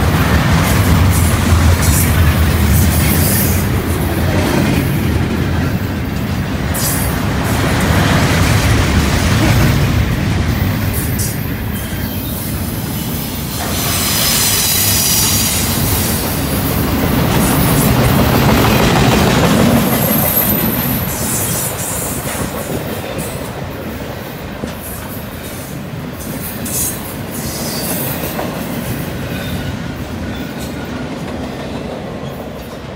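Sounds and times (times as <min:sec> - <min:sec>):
freight train wheels rumbling: 0:00.0 - 0:32.9.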